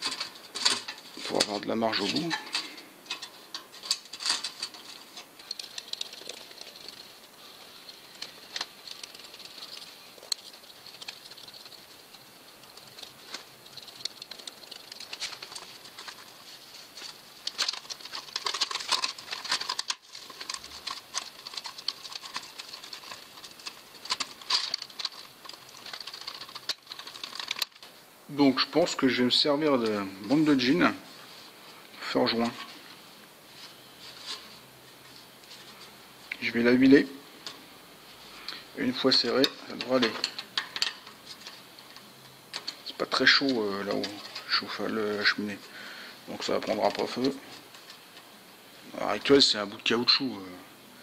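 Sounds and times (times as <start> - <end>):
crackling and scratching of materials: 0.0 - 50.6
sharp ticks: 7.9 - 15.6.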